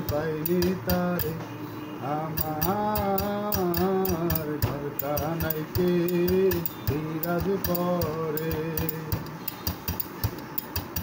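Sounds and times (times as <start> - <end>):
sharp high percussion clicks: 0.0 - 1.4, 2.3 - 11.0.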